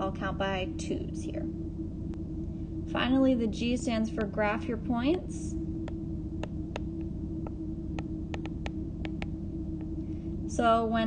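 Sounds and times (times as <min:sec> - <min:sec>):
electrical hum: 0:00.0 - 0:11.0
stylus tapping tablet screen: 0:05.8 - 0:09.9.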